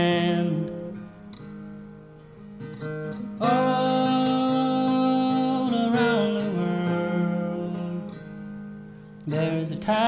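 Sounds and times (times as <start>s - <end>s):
man singing: 0.0s - 1.1s, 3.4s - 8.2s, 9.2s - 10.0s
acoustic guitar strumming: 0.0s - 10.0s.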